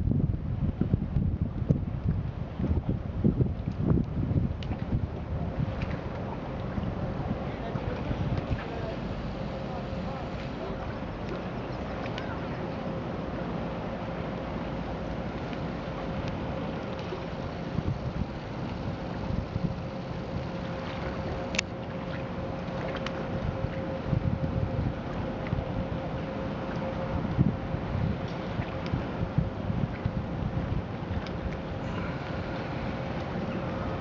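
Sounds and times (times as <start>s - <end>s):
wind buffeting microphone: 0.0s - 14.6s, 15.2s - 34.0s
water wash: 0.0s - 34.0s
faint vehicle hum: 4.9s - 34.0s.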